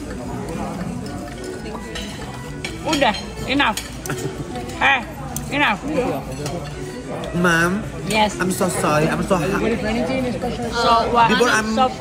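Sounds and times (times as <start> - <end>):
cutlery and dishes clinking: 0.0 - 12.0
murmur of diners' voices: 0.0 - 12.0.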